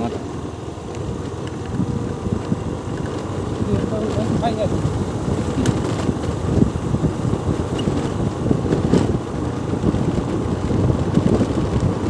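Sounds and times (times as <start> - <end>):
vehicle rumbling on dirt road: 0.0 - 12.0.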